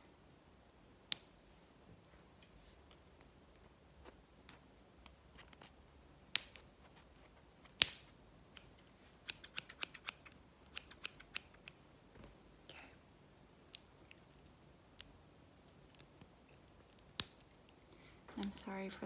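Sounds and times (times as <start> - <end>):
scissors snipping: 7.6 - 11.8.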